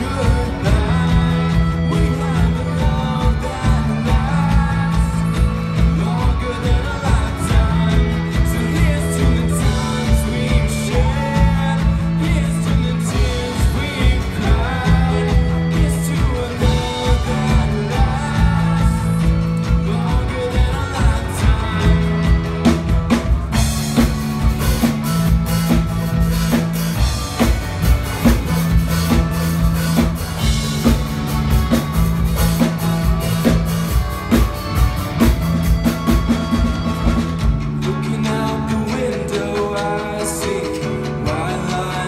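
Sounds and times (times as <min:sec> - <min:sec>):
bass: 0:00.0 - 0:42.0
drum kit: 0:00.0 - 0:42.0
guitar: 0:00.0 - 0:42.0
voices singing: 0:00.0 - 0:42.0.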